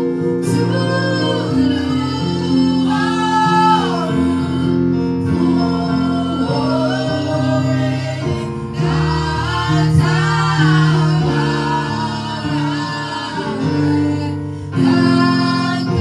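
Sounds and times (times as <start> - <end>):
woman singing gospel song: 0.0 - 8.2, 9.2 - 16.0.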